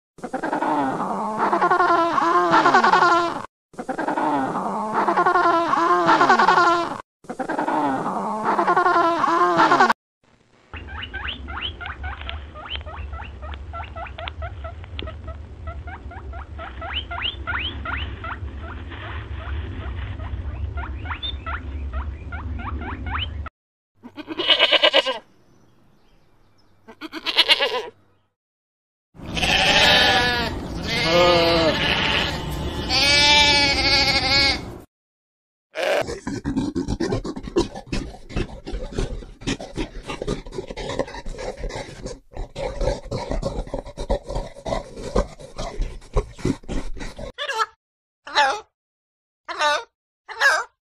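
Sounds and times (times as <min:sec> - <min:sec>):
low hum: 0:10.3 - 0:23.5
goats bleating: 0:24.0 - 0:25.2, 0:26.9 - 0:27.9, 0:29.2 - 0:34.7, 0:35.8 - 0:36.3.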